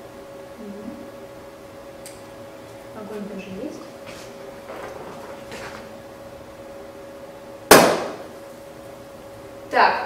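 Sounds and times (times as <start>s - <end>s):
balloon bursting with loud pop: 7.7s - 8.3s.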